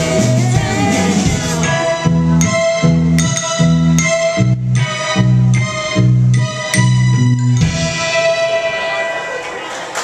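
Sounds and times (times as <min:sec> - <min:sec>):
bass: 0:00.0 - 0:08.5
drums: 0:00.0 - 0:08.9
guitar: 0:00.0 - 0:09.6
organ-like keyboard chords: 0:00.0 - 0:09.7.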